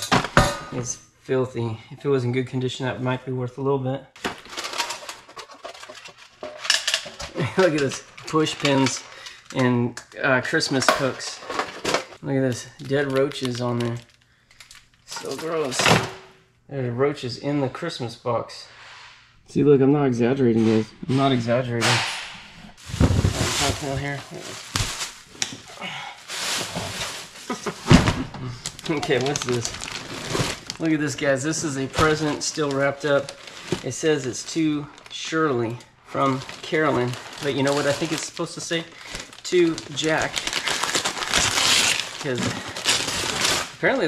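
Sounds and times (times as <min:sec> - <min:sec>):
plastic bag rustling: 0:04.2 - 0:09.6, 0:22.7 - 0:44.0
kitchen items clinking in plastic tote: 0:04.2 - 0:16.2, 0:22.8 - 0:44.0.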